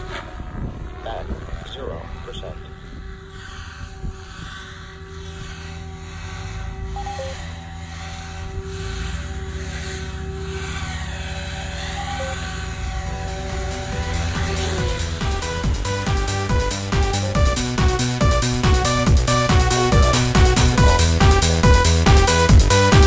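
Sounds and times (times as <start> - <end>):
electronic music: 0.0 - 23.0
rc helicopter rotor whine: 0.0 - 23.0.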